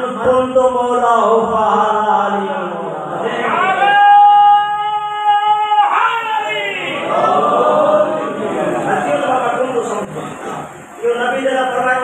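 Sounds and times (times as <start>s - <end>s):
man chanting into a microphone: 0.0s - 7.0s.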